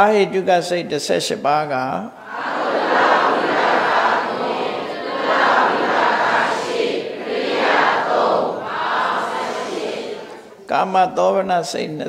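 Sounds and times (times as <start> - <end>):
voices reciting in unison: 2.2 - 11.4.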